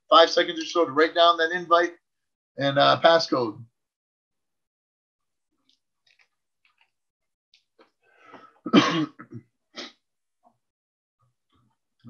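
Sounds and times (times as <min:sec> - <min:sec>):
man coughing: 0:08.7 - 0:09.4
man clearing his throat: 0:08.7 - 0:09.9.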